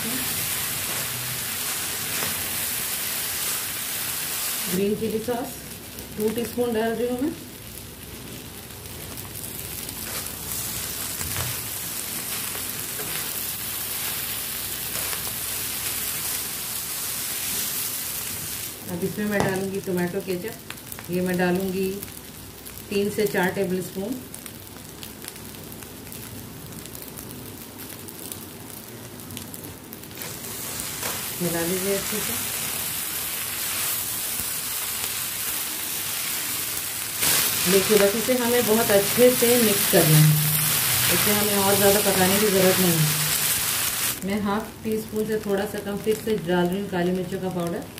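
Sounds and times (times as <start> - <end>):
noodles sizzling in a pan: 0.0 - 47.9.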